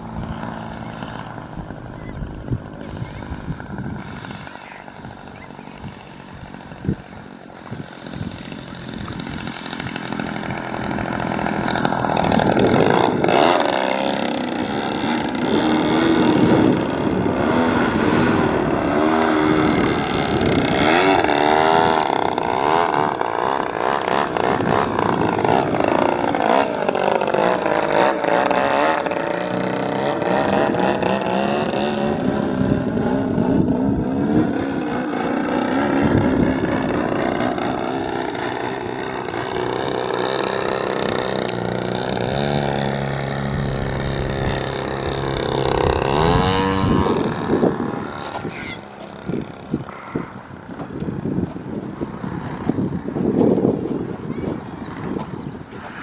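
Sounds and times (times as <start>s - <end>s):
model plane engine and propeller: 0.0s - 56.0s.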